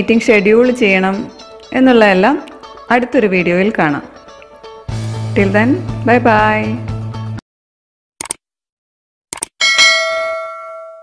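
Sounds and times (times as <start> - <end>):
bell ding: 9.6 - 11.0.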